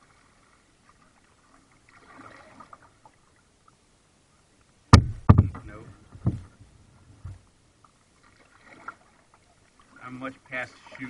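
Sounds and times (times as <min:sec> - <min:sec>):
knocks on plastic kayak hull: 0:04.9 - 0:06.5.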